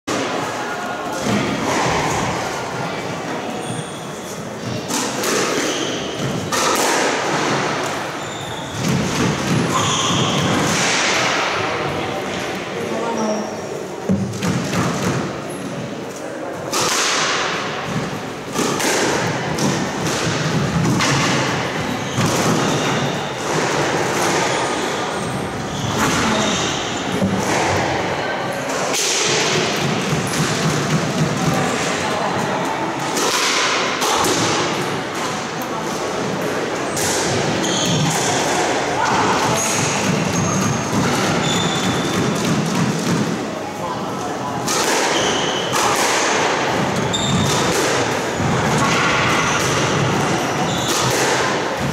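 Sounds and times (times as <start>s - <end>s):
racket striking squash ball: 3.7s - 11.7s, 14.1s - 15.4s, 16.7s - 28.0s, 28.7s - 43.6s, 44.6s - 51.9s.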